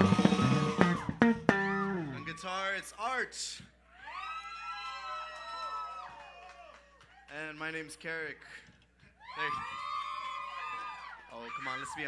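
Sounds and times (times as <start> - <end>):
voices whooping and cheering: 3.9 - 7.2, 9.2 - 12.0.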